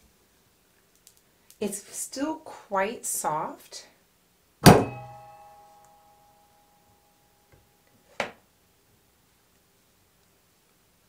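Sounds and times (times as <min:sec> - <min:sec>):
sharp knock: 0:04.6 - 0:05.4
steel wires ringing: 0:04.7 - 0:07.1.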